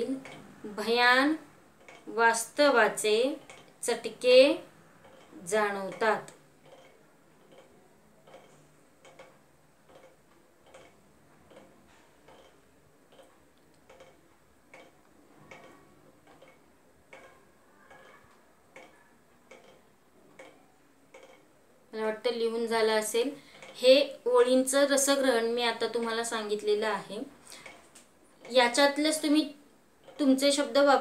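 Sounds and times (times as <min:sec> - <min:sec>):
faint even ticking: 0:00.0 - 0:31.0.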